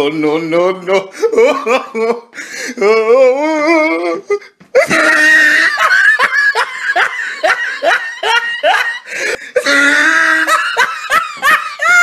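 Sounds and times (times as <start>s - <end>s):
person laughing loudly: 1.1s - 12.0s.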